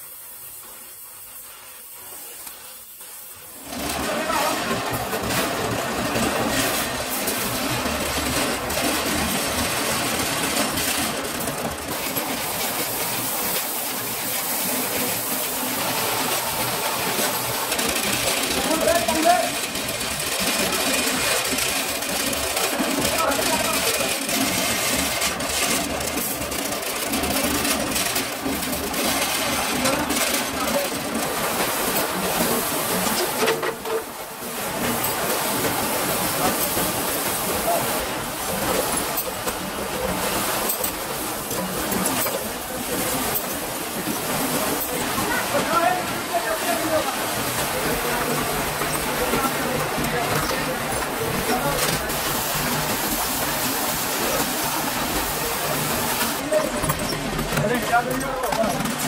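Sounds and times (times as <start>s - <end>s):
metalworking machinery running: 0.6s - 59.0s
people talking: 3.8s - 5.5s, 12.0s - 24.7s, 27.1s - 34.0s, 34.6s - 59.0s.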